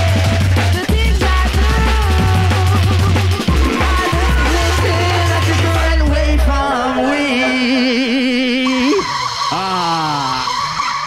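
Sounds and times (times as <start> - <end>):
steady high tone: 6.6 - 11.0
wavering held tone: 7.5 - 9.7.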